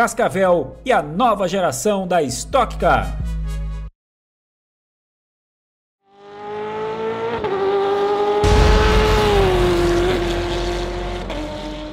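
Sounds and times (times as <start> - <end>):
race car engine: 6.1 - 11.9
deep boom: 8.4 - 10.6.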